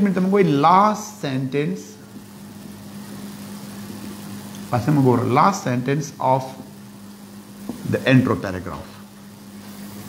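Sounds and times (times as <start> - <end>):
faint hiss: 0.0 - 10.0
steady low hum: 0.0 - 10.0.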